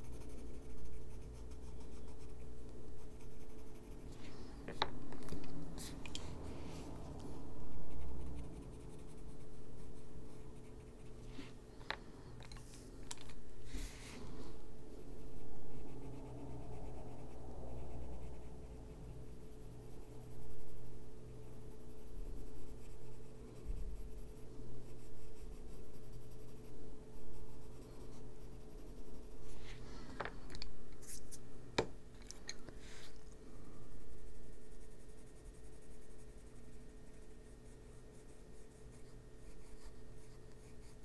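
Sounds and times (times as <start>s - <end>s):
pencil scratching on paper: 0.0s - 4.3s, 6.7s - 11.6s, 15.0s - 29.8s, 34.1s - 41.0s.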